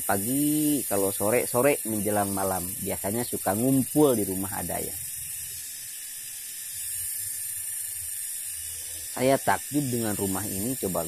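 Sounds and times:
cicadas droning: 0:00.0 - 0:11.0.

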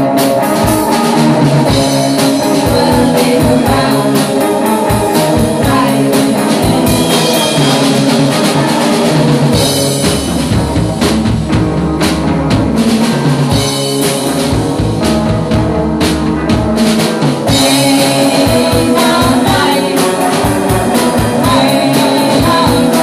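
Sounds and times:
drum kit: 0:00.0 - 0:23.0
electric guitars: 0:00.0 - 0:23.0.

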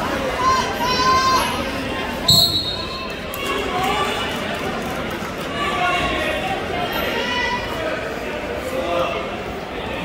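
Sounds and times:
spectators talking: 0:00.0 - 0:10.0
whistle blast: 0:02.3 - 0:03.1.

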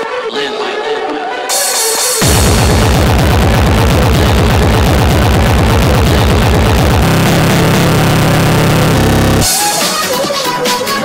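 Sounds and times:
fast buzzing low roll: 0:02.2 - 0:09.5
distorted electronic kick drums: 0:02.2 - 0:09.6.

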